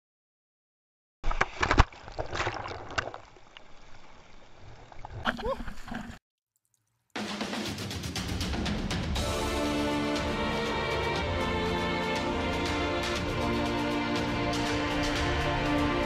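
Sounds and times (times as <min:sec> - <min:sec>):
music: 0:07.2 - 0:16.0.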